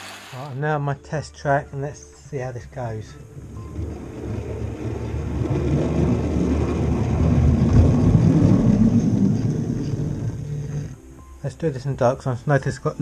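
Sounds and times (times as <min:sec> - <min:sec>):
electric motor whirring: 0:00.0 - 0:00.6
model train wheels rumbling on rail: 0:00.0 - 0:00.6.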